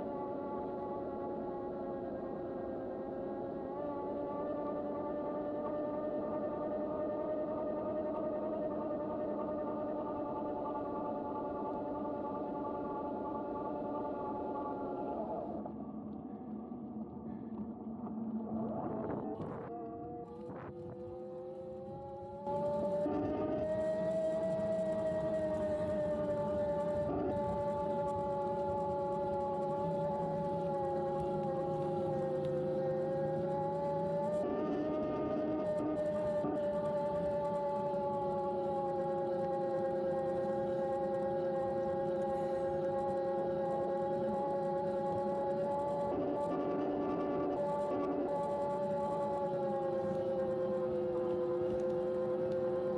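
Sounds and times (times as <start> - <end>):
electric bike motor whine: 20.3 - 52.9.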